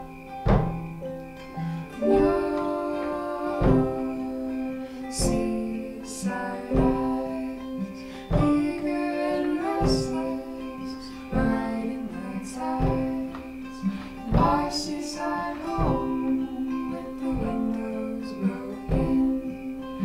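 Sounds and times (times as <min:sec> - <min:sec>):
acoustic guitar strumming: 0:00.0 - 0:20.0
digital keyboard chords: 0:00.0 - 0:20.0
man and woman singing: 0:01.6 - 0:20.0.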